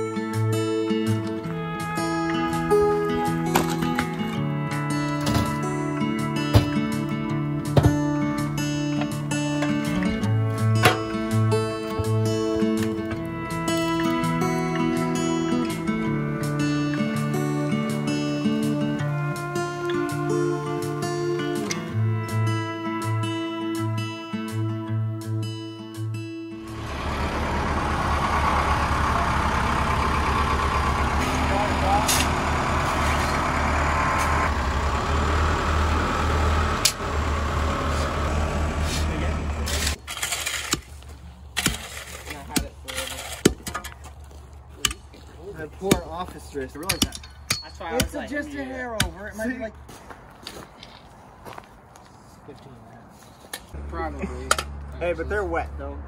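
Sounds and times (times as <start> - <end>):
diesel engine running: 0.0 - 23.0, 26.5 - 41.6
background music: 0.0 - 26.8
hand tampers striking gravel: 38.8 - 44.0.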